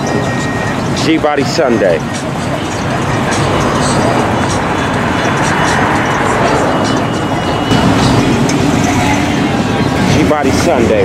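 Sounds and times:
car engines running: 0:00.0 - 0:11.0
music playing: 0:00.0 - 0:11.0.

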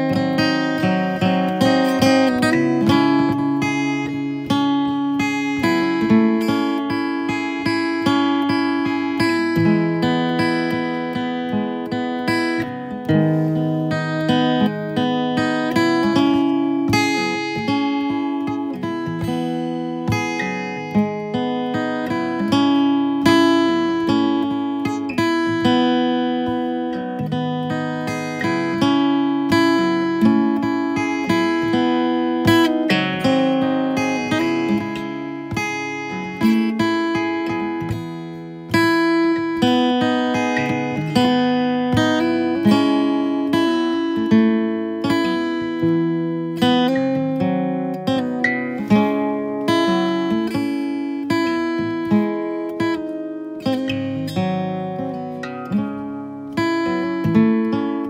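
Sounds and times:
acoustic guitar picking: 0:00.0 - 0:58.0.

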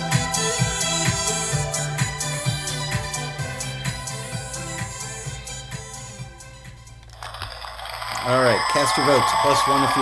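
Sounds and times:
recorded music playing: 0:00.0 - 0:10.0
man speaking: 0:08.3 - 0:10.0.

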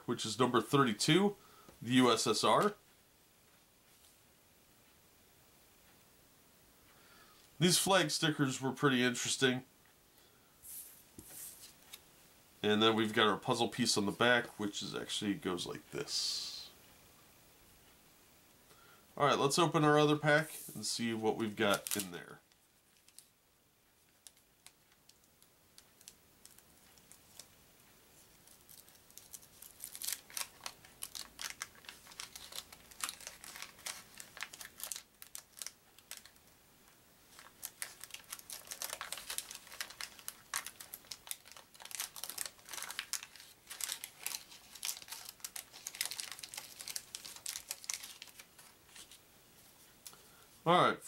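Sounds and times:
wrapper crinkling: 0:20.9 - 0:23.3, 0:24.1 - 0:27.6, 0:28.2 - 0:36.6, 0:37.3 - 0:49.2.

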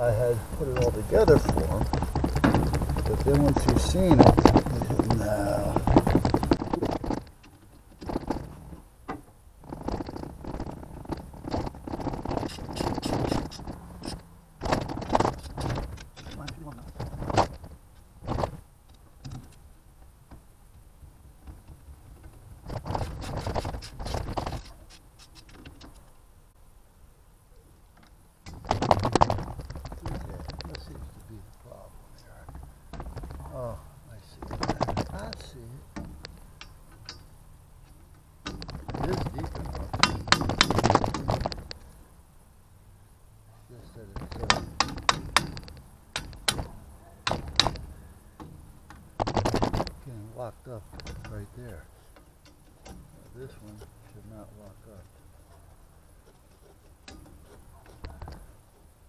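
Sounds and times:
hand tools clicking on metal: 0:11.5 - 0:17.0, 0:34.4 - 0:41.8, 0:44.2 - 0:50.1.

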